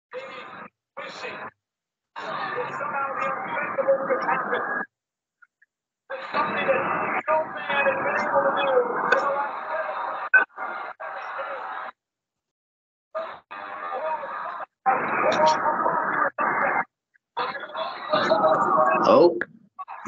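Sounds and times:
crowd noise from television: 0:00.1 - 0:01.6, 0:02.2 - 0:04.9, 0:06.1 - 0:12.0, 0:13.2 - 0:20.0
muffled voices from television: 0:00.1 - 0:01.6, 0:02.2 - 0:12.0, 0:13.2 - 0:20.0.

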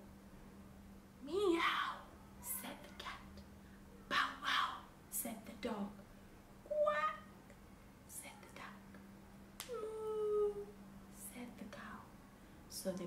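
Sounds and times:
steady low hum: 0:00.0 - 0:13.0
woman whispering and reading: 0:01.6 - 0:03.5, 0:04.1 - 0:06.0, 0:08.1 - 0:09.1, 0:09.8 - 0:13.0
woman imitating animal noises: 0:06.7 - 0:07.3, 0:09.7 - 0:10.8.

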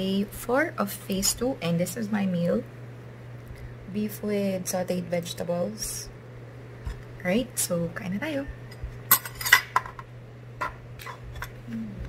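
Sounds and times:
low steady hum: 0:00.0 - 0:12.0
cutlery clinking against plate: 0:09.1 - 0:10.0.

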